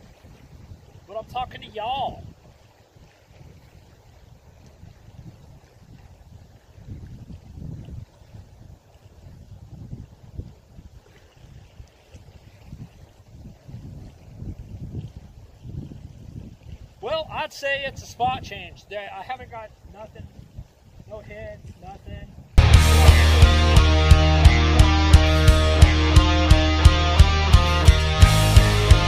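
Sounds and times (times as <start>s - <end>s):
wind buffeting microphone: 0.0s - 22.8s.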